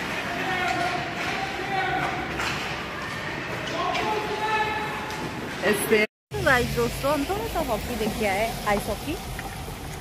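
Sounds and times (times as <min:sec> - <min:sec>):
players shouting echoing: 0:00.0 - 0:05.9.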